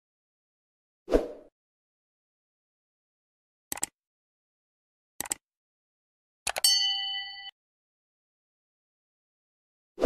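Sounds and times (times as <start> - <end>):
mouse clicks: 3.7 - 4.0, 5.2 - 5.4
notification bell chime: 6.6 - 7.5.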